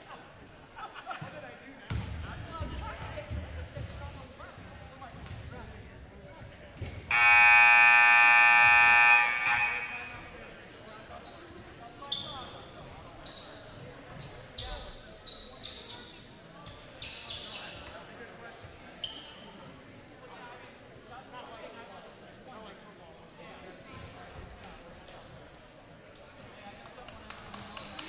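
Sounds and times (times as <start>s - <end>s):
scoreboard horn buzzing: 7.1s - 10.3s.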